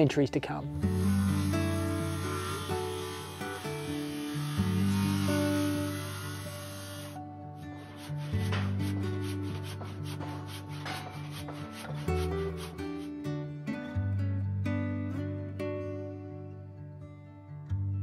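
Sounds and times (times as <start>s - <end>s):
background music with low notes: 0.0s - 18.0s
tool rasping on wood: 0.9s - 7.2s, 7.8s - 13.1s.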